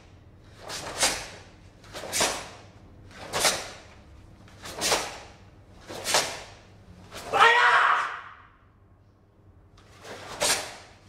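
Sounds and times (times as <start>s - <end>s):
person shouting: 7.3s - 8.5s.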